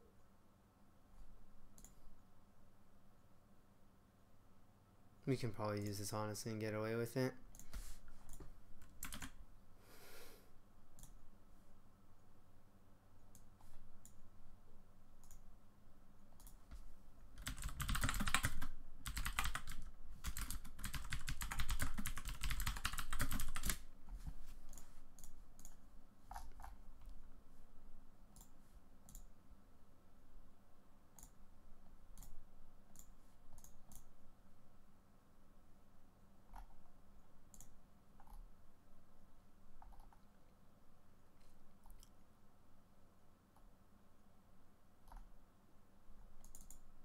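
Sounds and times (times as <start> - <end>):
mouse clicks: 1.7 - 2.0, 32.2 - 34.1, 46.4 - 46.8
computer keyboard typing: 8.3 - 9.4, 17.4 - 23.8, 24.7 - 26.8, 32.2 - 34.1, 37.5 - 38.4, 39.8 - 40.2, 46.4 - 46.9.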